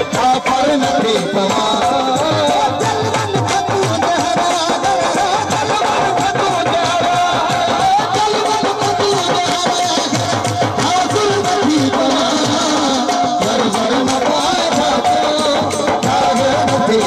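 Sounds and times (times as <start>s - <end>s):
hand drum rhythm: 0.0s - 17.0s
harmonium melody: 0.0s - 17.0s.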